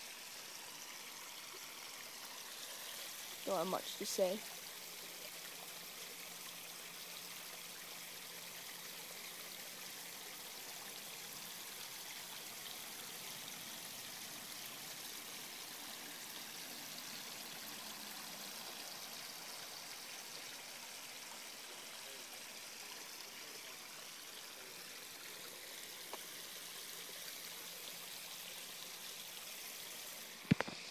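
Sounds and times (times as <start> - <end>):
water trickling in pond: 0.0 - 30.9.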